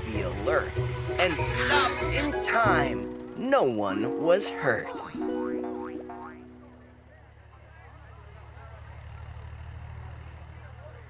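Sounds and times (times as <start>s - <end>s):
held musical chord with glides: 0.0s - 7.9s
cartoon tractor engine chugging: 0.0s - 11.0s.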